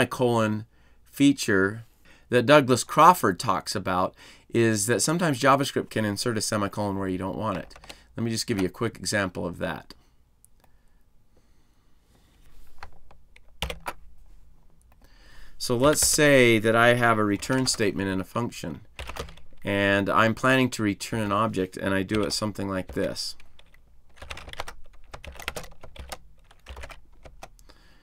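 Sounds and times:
computer keyboard typing: 7.5 - 8.7, 12.7 - 14.0, 17.3 - 18.0, 19.0 - 19.7, 22.1 - 27.6.

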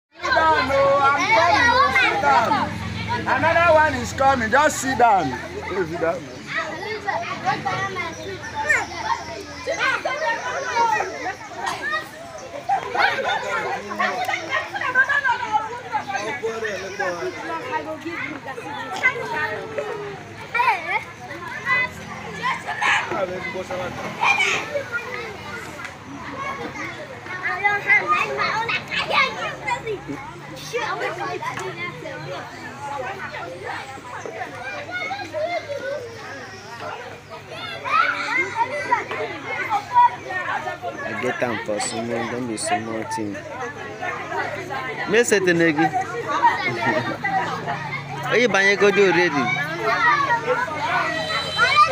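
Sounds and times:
children chattering and calling out: 0.1 - 51.9.

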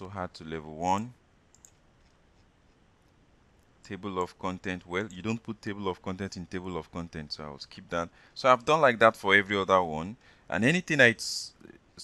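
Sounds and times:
computer mouse clicks: 1.5 - 3.2.

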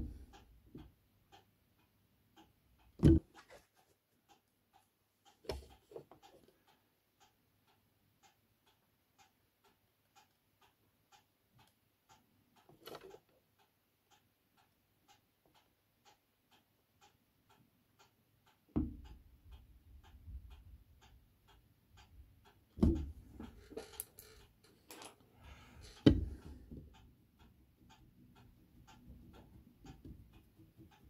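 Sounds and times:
clock ticking faintly: 0.0 - 31.0.

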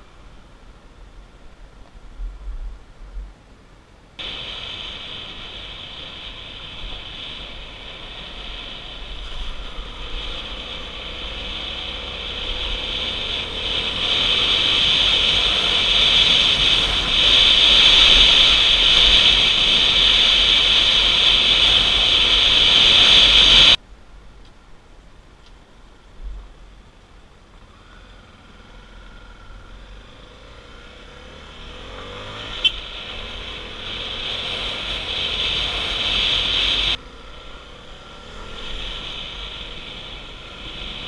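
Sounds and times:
motorcycle engine: 4.2 - 23.8, 27.6 - 41.0
wind hiss: 4.2 - 24.8, 27.5 - 41.0.

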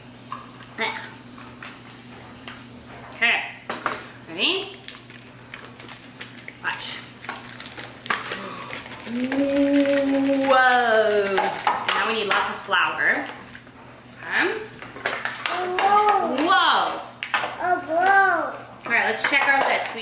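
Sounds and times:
foil packet crinkling: 4.8 - 11.9.

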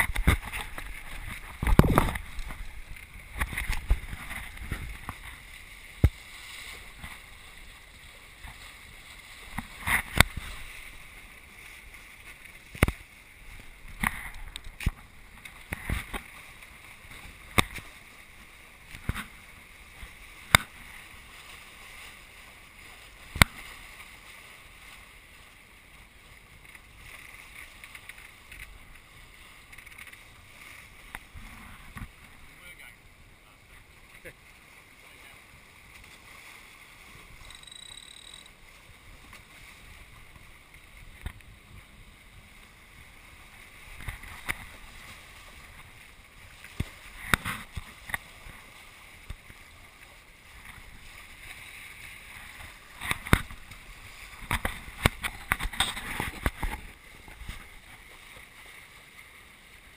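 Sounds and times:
wind on microphone: 0.0 - 5.4
water rushing: 0.0 - 59.9.

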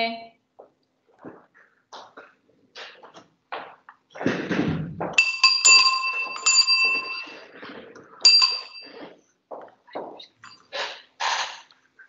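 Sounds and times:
low rumbling noise: 4.2 - 5.2
small metal bell ringing: 5.2 - 7.5, 8.2 - 9.0, 10.4 - 10.7.

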